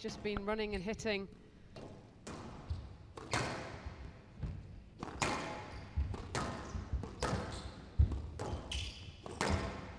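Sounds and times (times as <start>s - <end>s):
squash ball hits: 1.8s - 9.9s.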